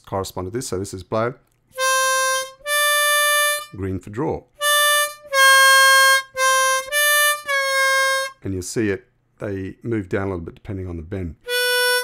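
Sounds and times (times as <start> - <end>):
harmonica notes: 1.8 - 3.8, 4.6 - 8.4, 11.5 - 12.0.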